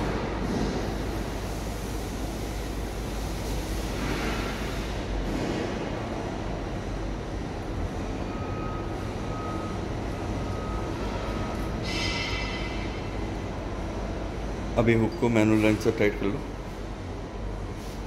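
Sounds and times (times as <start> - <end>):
machinery rumble and hiss: 0.0 - 18.0.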